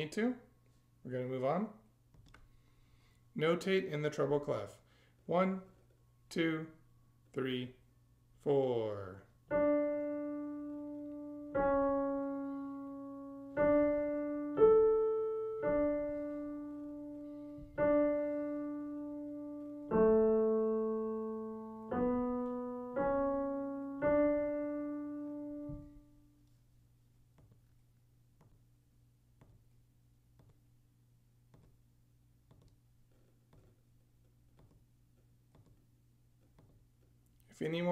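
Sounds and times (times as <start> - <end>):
slow piano melody: 9.4 - 26.5.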